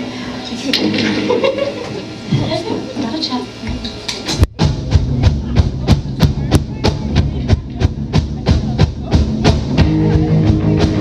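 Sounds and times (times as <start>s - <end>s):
live rock band playing: 0.7s - 2.8s, 3.6s - 11.0s
drum hits: 3.7s - 11.0s.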